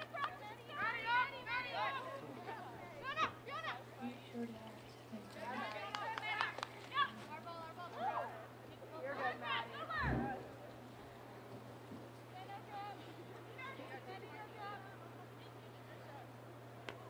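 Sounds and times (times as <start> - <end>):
women shouting and calling: 0.0 - 4.2, 5.4 - 10.6
low electrical hum: 0.0 - 17.0.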